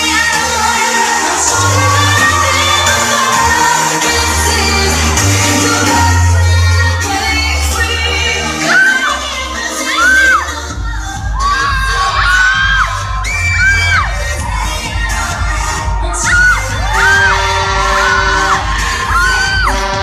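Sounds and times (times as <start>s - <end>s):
crowd shrieking and cheering: 0.0s - 20.0s
loud pop music: 0.0s - 20.0s.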